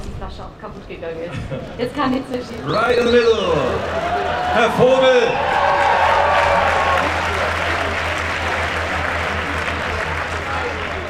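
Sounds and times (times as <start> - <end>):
crowd applauding: 2.5 - 11.0.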